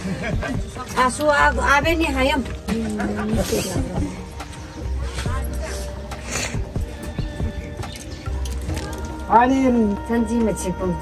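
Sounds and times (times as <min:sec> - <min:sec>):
background music: 0:00.0 - 0:11.0
people's voices: 0:00.0 - 0:11.0.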